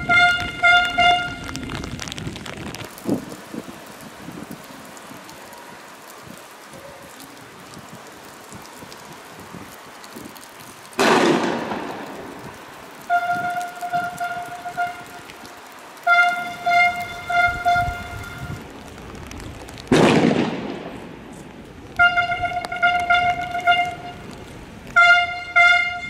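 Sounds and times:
vehicle horn pulsing blasts: 0.0 - 1.6, 13.1 - 15.3, 16.0 - 18.6, 22.0 - 24.3, 25.0 - 26.0
loud bangs with echo: 11.0 - 12.1, 19.9 - 21.0.

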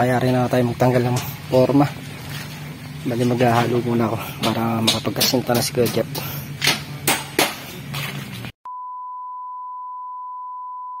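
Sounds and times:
steady electronic beep: 8.7 - 11.0.

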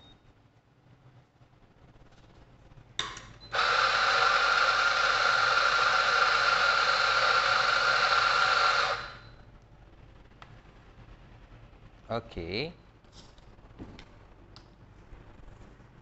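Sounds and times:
steam wand hissing: 3.6 - 9.2.

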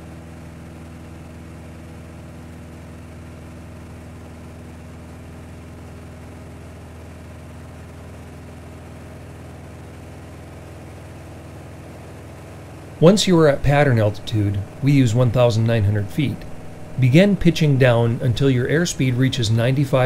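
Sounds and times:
propeller plane engine drone: 0.0 - 20.0.

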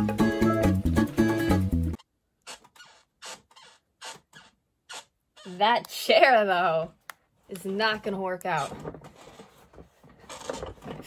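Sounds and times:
chair creaking and shuffling: 7.6 - 11.0.

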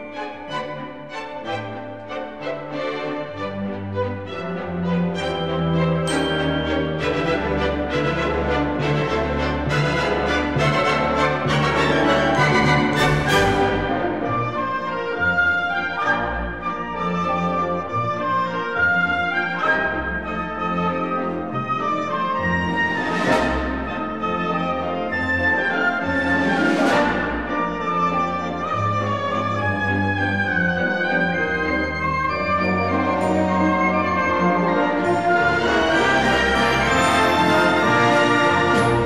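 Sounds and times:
orchestra playing a waltz: 0.0 - 39.0.

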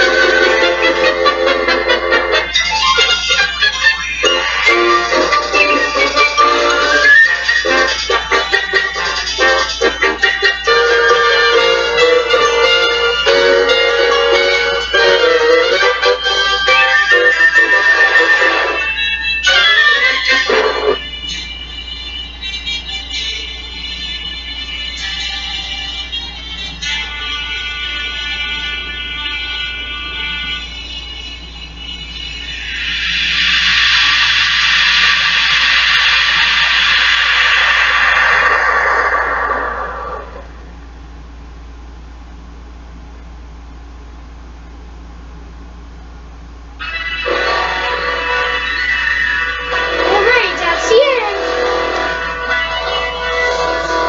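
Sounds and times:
music from tv speaker: 0.0 - 40.6, 46.8 - 54.0
steady low hum: 0.0 - 54.0
hissing noise sweeping downward: 32.6 - 40.7.

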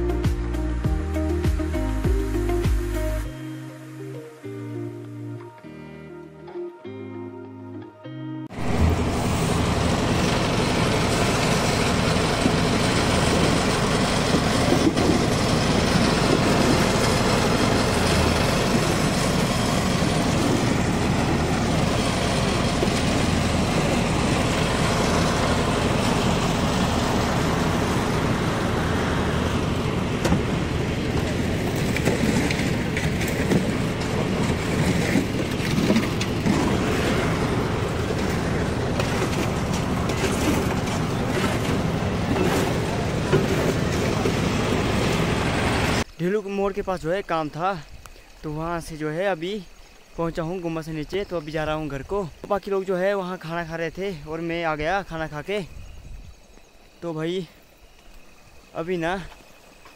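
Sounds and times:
concrete mixer engine running: 8.5 - 46.1.

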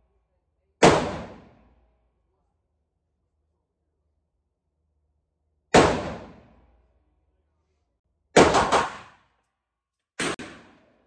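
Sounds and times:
pistol shots with echo: 0.8 - 1.6, 5.7 - 6.6, 8.4 - 9.3, 10.2 - 11.0.

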